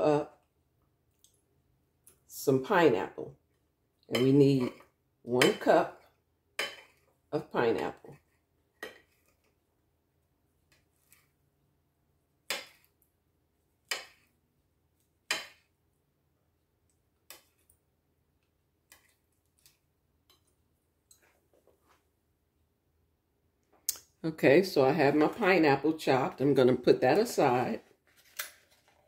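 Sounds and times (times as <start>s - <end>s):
knife striking ceramic plate: 6.6s - 6.9s, 15.3s - 15.6s.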